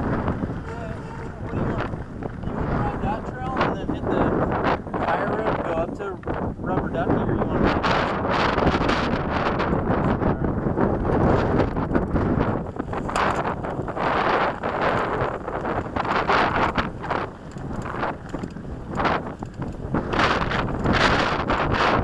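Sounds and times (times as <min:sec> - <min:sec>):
wind buffeting microphone: 0:00.0 - 0:22.0
bike knocks and rattles: 0:11.0 - 0:22.0.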